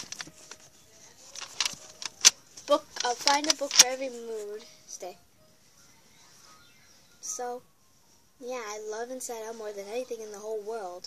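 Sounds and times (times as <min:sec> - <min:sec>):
child speaking: 0:02.7 - 0:05.2, 0:07.2 - 0:07.6, 0:08.4 - 0:11.0
device handling clicks and taps: 0:03.0 - 0:03.9.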